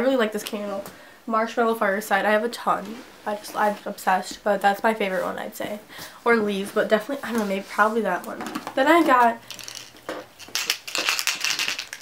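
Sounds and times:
packaging crinkling: 9.4s - 12.0s.

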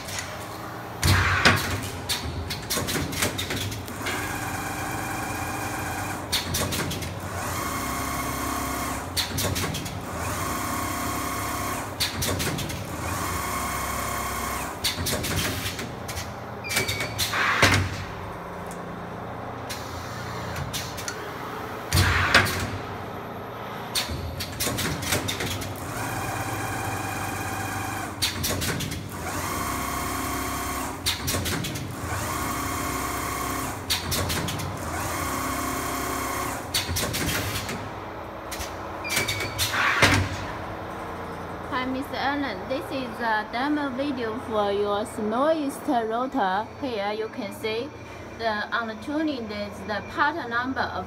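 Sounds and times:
machine clicks and knocks: 1.0s - 4.5s, 6.2s - 7.4s, 9.1s - 10.0s, 11.9s - 13.0s, 14.8s - 18.9s, 23.9s - 25.8s, 28.0s - 29.1s, 31.0s - 32.0s, 33.8s - 34.9s, 36.6s - 37.9s, 38.5s - 40.6s.

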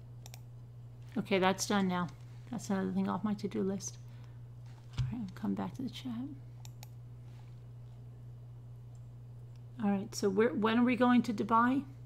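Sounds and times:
low electrical hum: 0.0s - 12.0s
computer clicks: 0.2s - 0.4s, 6.6s - 7.0s.

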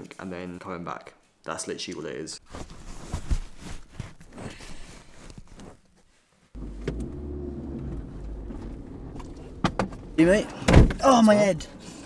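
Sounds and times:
rustling: 2.4s - 7.2s
car engine idling: 6.6s - 10.7s.

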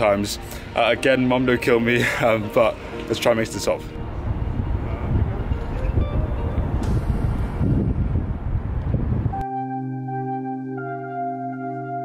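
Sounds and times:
ambient music with bell-like tones: 0.0s - 7.1s, 9.4s - 12.0s
heavy low rumble: 3.8s - 9.4s.

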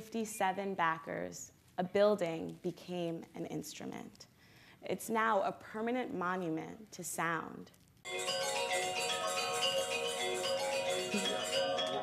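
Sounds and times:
chime-like short notes: 8.1s - 12.0s.

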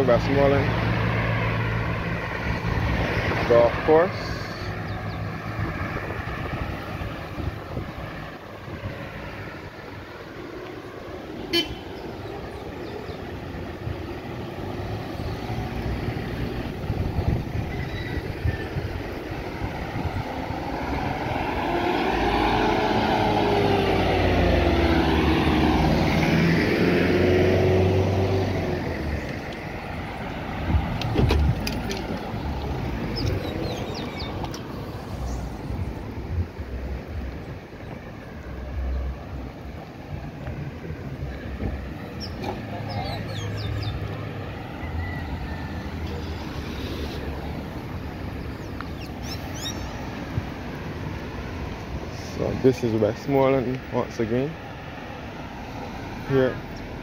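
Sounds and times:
highway traffic passing: 0.0s - 57.0s
loud vehicle passing: 0.0s - 57.0s.

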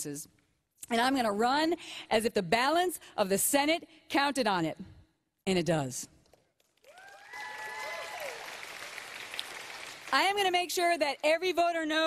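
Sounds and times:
audience applauding: 6.6s - 10.5s
voices cheering and whooping: 6.9s - 8.6s.

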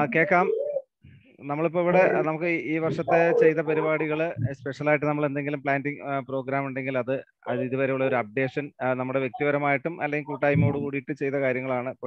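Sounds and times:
person speaking over video call: 0.0s - 12.0s.

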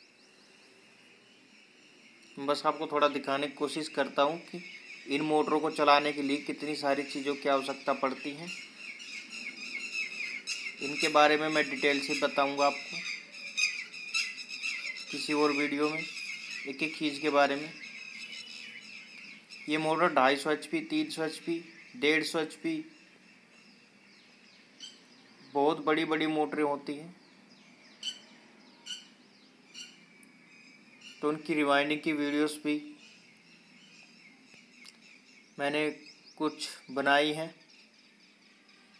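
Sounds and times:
faint background hiss: 0.0s - 38.9s
small birds chirping: 0.0s - 38.9s.

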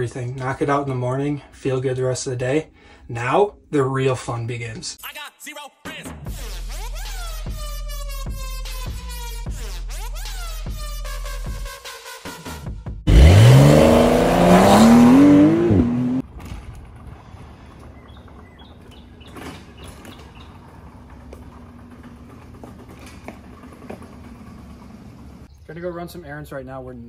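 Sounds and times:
car engine revving: 13.1s - 16.2s.

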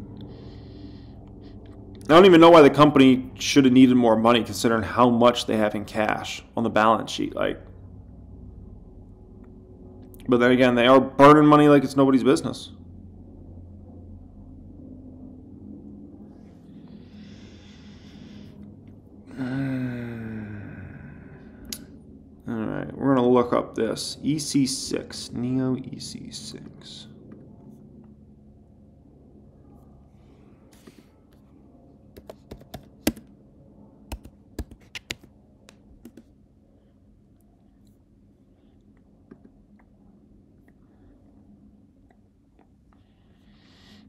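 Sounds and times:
low electrical hum: 0.0s - 44.0s
long breath out: 19.2s - 21.8s
typing on computer keyboard: 32.2s - 33.3s, 34.1s - 35.3s, 36.0s - 36.3s.

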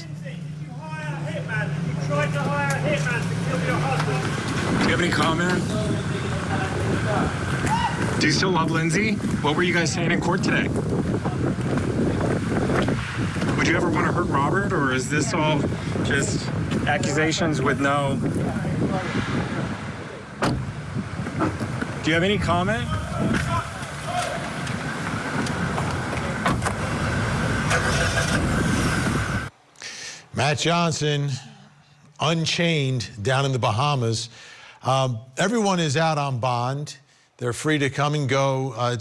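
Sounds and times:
car engine rumbling: 0.0s - 29.6s
street noise: 0.0s - 34.8s
wind buffeting microphone: 4.4s - 27.4s
car door shutting: 20.4s - 21.9s, 26.3s - 27.0s.

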